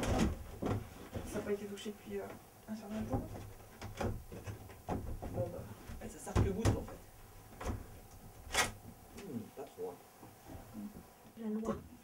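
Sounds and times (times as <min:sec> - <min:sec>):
wooden knocks and bumps: 0:00.0 - 0:01.6, 0:02.2 - 0:07.0.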